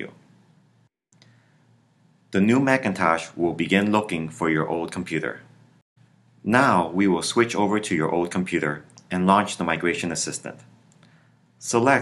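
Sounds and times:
faint recording hiss: 0:00.0 - 0:12.0.

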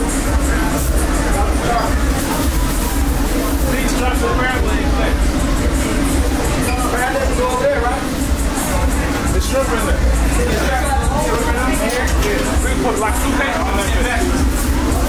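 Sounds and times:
steady low rumble: 0:00.0 - 0:06.6
faint music: 0:00.0 - 0:15.0
indistinct background voices: 0:00.0 - 0:15.0.

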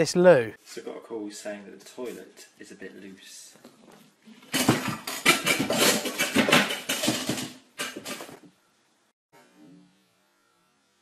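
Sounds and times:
ceramic toilet rattling and scraping: 0:04.3 - 0:08.4.

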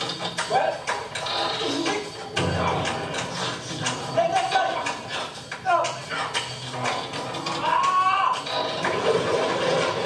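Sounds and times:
music score from television: 0:00.0 - 0:10.0.

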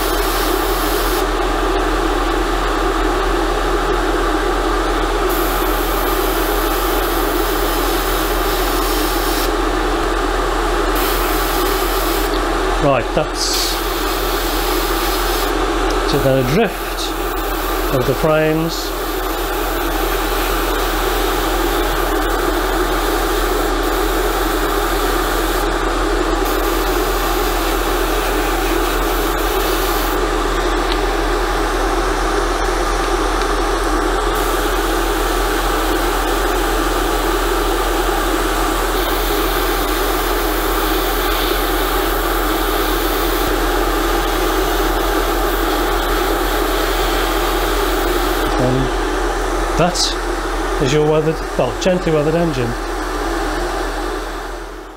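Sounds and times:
airbrush hissing: 0:05.3 - 0:09.6, 0:11.0 - 0:12.4, 0:13.5 - 0:18.2, 0:18.9 - 0:25.6, 0:26.4 - 0:30.2, 0:39.0 - 0:48.6.

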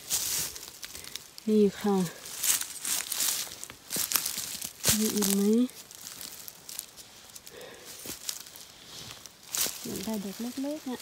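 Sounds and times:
footsteps crunching through dry leaves: 0:00.0 - 0:11.0
person speaking: 0:01.4 - 0:02.3, 0:04.8 - 0:05.8, 0:09.8 - 0:11.0.

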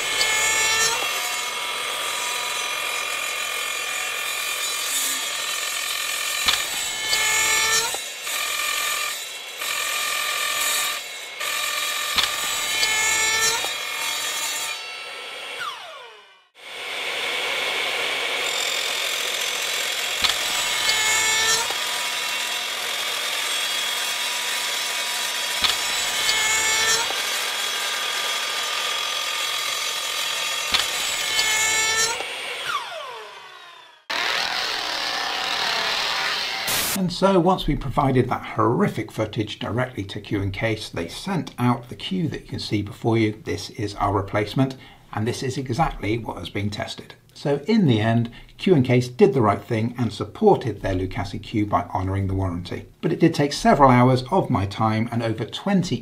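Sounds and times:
power saw cutting wood: 0:00.0 - 0:38.3
sharp snap of wood piece: 0:06.4 - 0:07.2, 0:12.2 - 0:12.9, 0:20.2 - 0:21.0, 0:25.6 - 0:26.4, 0:30.7 - 0:31.5.

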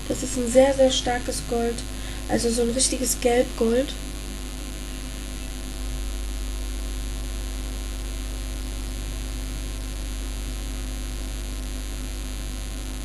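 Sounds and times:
electrical mains hum: 0:00.0 - 0:13.0
hiss and static: 0:00.0 - 0:13.0.

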